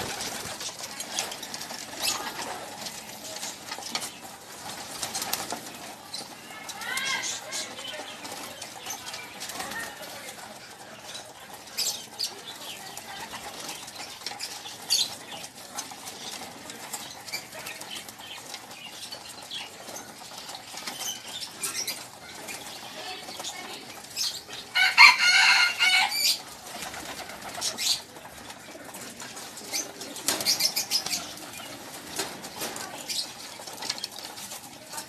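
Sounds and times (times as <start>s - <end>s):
pigeon wings flapping: 0.0s - 35.0s.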